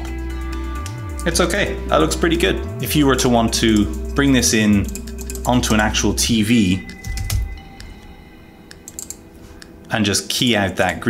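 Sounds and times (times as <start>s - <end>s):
faint background music: 0.0s - 11.0s
keyboard typing: 4.8s - 5.9s, 6.8s - 9.8s.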